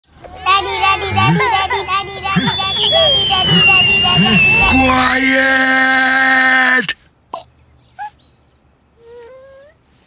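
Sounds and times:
children babbling and clamouring: 0:00.2 - 0:06.2
high tone sliding downward: 0:00.5 - 0:06.0.

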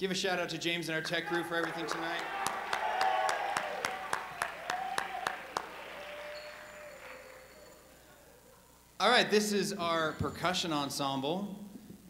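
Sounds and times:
audience applause: 0:01.3 - 0:08.2
close hand claps: 0:01.5 - 0:07.9.

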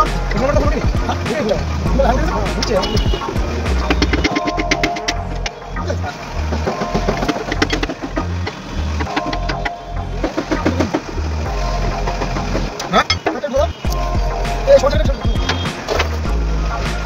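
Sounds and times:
song with vocals over bass beat: 0:00.0 - 0:13.2, 0:13.9 - 0:17.0.

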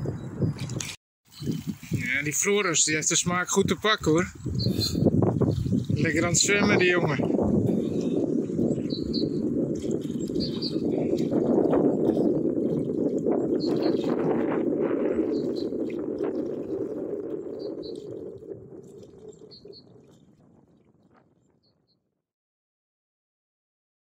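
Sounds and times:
wind rushing: 0:00.0 - 0:21.2
choppy lake water: 0:00.5 - 0:21.9.

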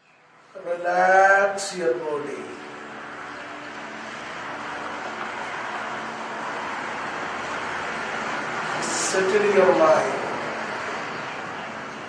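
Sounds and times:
road traffic rushing: 0:00.0 - 0:12.0.

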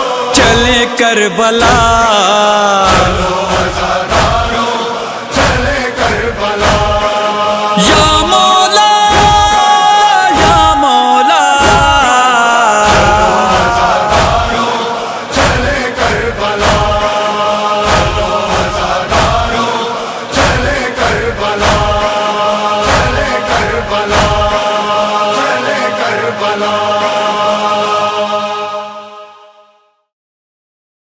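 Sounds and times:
chanted voices holding long notes: 0:02.3 - 0:29.5.

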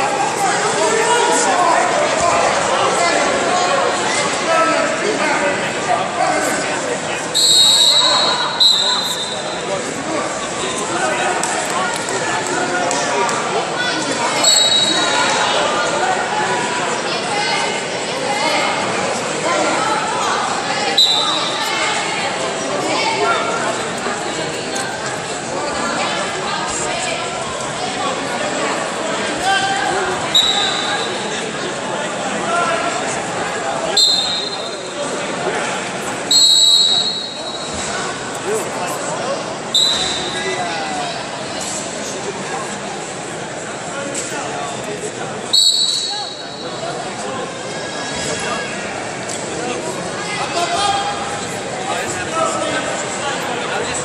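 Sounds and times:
chatter in a hall: 0:00.0 - 0:54.0
referee's whistle blasts: 0:07.3 - 0:09.6, 0:14.4 - 0:15.2, 0:21.0 - 0:21.6, 0:30.3 - 0:31.2, 0:34.0 - 0:34.9, 0:36.3 - 0:37.8, 0:39.7 - 0:40.4, 0:45.5 - 0:46.6.

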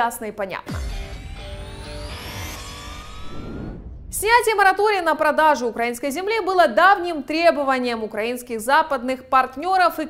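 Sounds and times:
electronic jingle: 0:00.7 - 0:04.6
deep bass: 0:00.7 - 0:04.7
rising sweep tones: 0:00.7 - 0:04.8.

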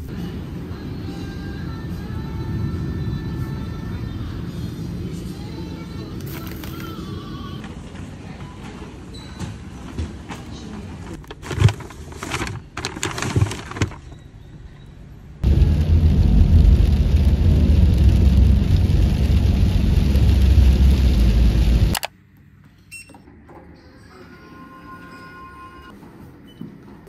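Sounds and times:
paper bags rustling: 0:06.2 - 0:07.2, 0:11.1 - 0:14.2
heavy rain drumming on car roof: 0:15.4 - 0:22.0.

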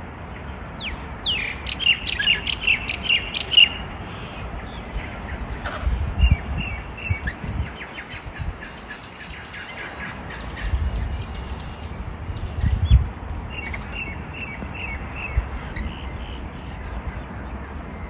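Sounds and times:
birds chirping: 0:00.3 - 0:18.0.

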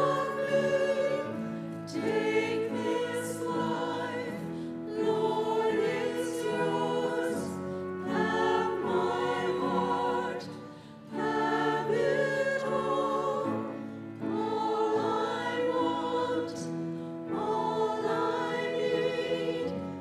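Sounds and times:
choir singing a hymn: 0:00.0 - 0:20.0.

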